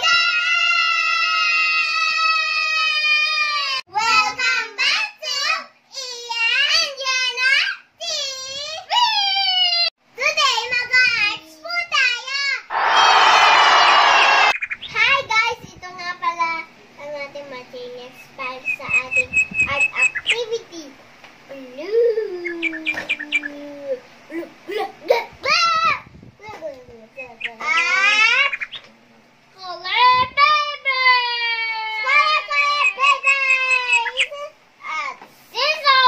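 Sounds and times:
crowd cheering: 12.7s - 14.6s
girls talking: 29.6s - 36.0s.

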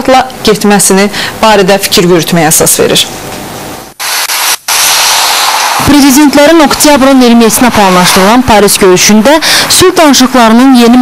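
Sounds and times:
loud steady hissing: 3.8s - 10.0s.

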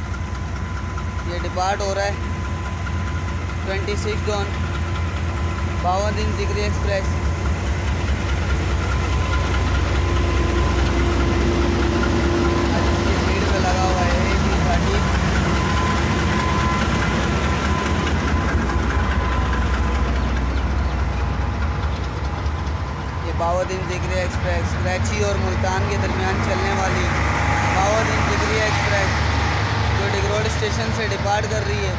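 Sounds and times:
locomotive engine rumble: 0.0s - 31.9s.

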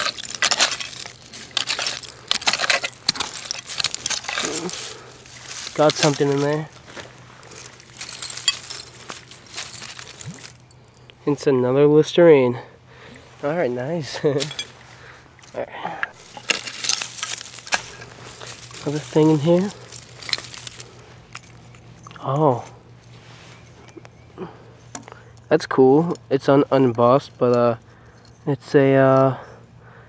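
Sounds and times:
hands scraping soil and leaves: 0.0s - 10.6s, 15.5s - 24.4s
glass bottle clink: 14.4s - 14.8s.

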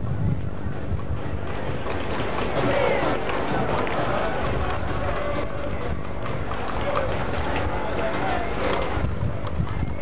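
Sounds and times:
dense low background noise: 0.0s - 10.0s.

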